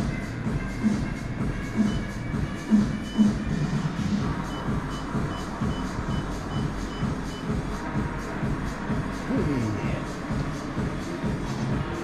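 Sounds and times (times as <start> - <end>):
background music: 0.0 - 12.0
exercise bike console beeping: 1.5 - 7.7.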